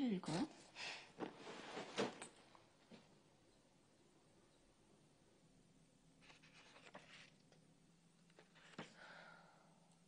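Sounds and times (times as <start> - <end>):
scratchy paper rustle: 6.2 - 7.6, 8.3 - 8.9.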